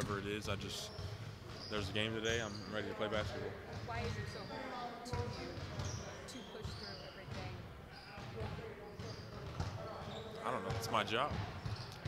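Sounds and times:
basketballs dribbling on a court: 0:00.0 - 0:12.0.

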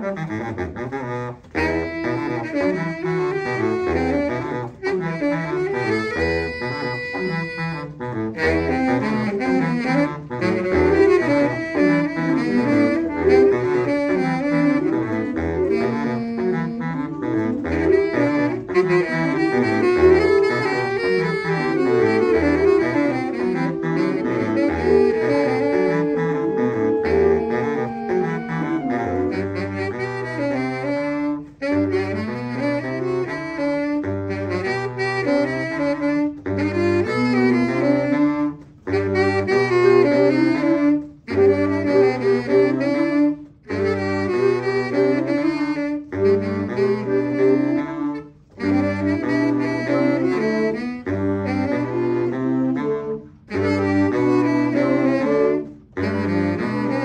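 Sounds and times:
baritone saxophone bass line: 0:00.0 - 0:57.0
saxophone ensemble playing: 0:00.0 - 0:57.0.

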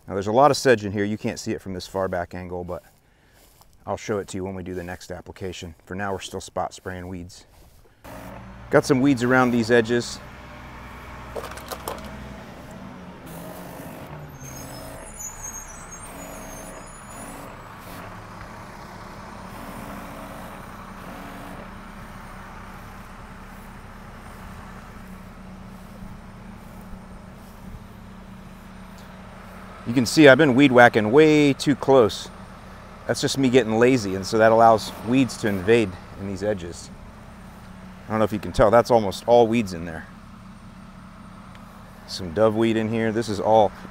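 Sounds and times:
sprayer hissing: 0:08.1 - 0:31.0, 0:32.3 - 0:36.6.

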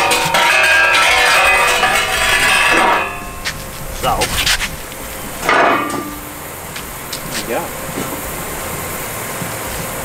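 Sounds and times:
steel forklift tine clanking: 0:00.0 - 0:10.0.

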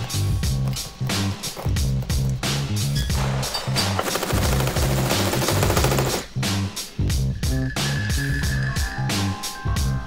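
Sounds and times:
background music with beat: 0:00.0 - 0:10.0
rapid automatic gunfire: 0:04.0 - 0:06.3.

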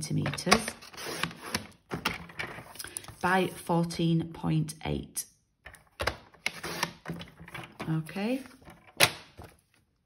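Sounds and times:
paper trimmer blade scraping: 0:00.8 - 0:01.7, 0:06.5 - 0:07.0.

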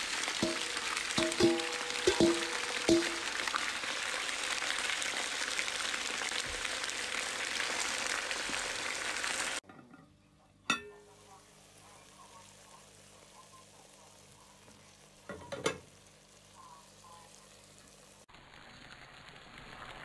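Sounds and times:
food sizzling in oil: 0:00.0 - 0:09.6, 0:10.7 - 0:20.0.

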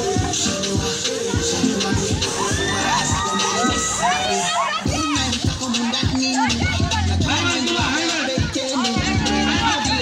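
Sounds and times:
crowd shouting and cheering: 0:00.0 - 0:10.0.

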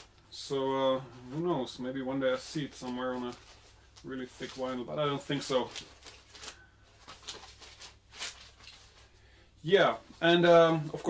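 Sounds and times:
cardboard sleeves rustling: 0:00.0 - 0:11.0.

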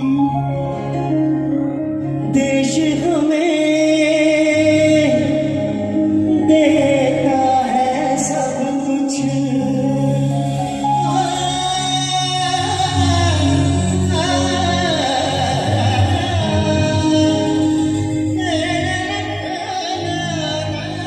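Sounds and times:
keyboard chords: 0:00.0 - 0:21.0
man singing into microphone: 0:00.0 - 0:21.0.

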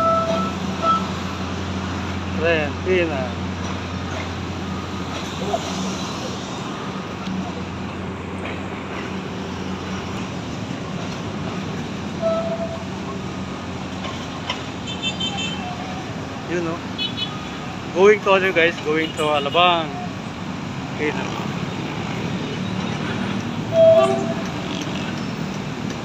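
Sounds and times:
train horn toot: 0:00.0 - 0:01.2, 0:12.2 - 0:12.9, 0:23.7 - 0:24.6
diesel train engine hum: 0:00.0 - 0:17.0, 0:22.1 - 0:26.0
street traffic: 0:00.0 - 0:26.0.

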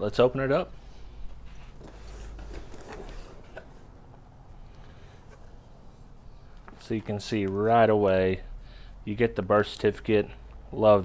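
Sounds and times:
cardboard box lid opening: 0:01.8 - 0:03.8.

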